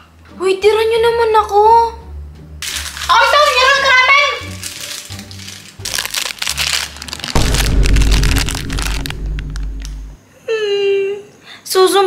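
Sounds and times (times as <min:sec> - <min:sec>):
foil snack packet crinkling: 0:02.6 - 0:09.9
background music with deep bass: 0:04.5 - 0:10.2.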